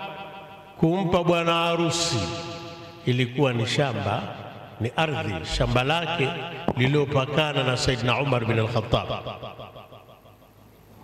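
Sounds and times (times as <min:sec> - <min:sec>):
man speaking over loudspeaker: 0:00.0 - 0:09.5
fluttering echo: 0:03.9 - 0:07.8.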